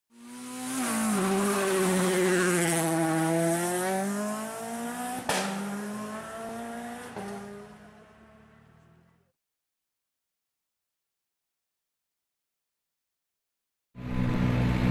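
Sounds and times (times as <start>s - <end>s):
race car engine: 0.1s - 9.3s, 14.0s - 14.9s.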